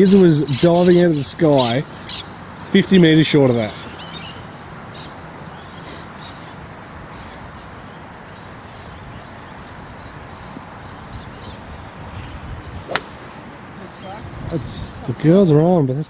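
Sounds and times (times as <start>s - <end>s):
outdoor background noise: 0.0s - 16.0s
golf club striking ball: 12.9s - 13.4s.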